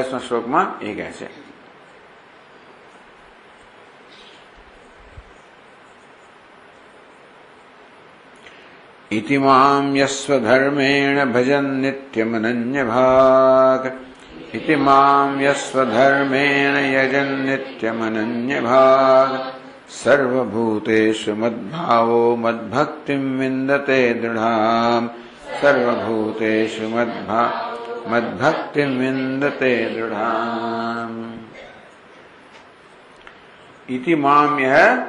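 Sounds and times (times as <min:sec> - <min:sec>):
faint hiss: 0:00.0 - 0:35.0
man chanting: 0:09.1 - 0:31.6, 0:33.9 - 0:35.0.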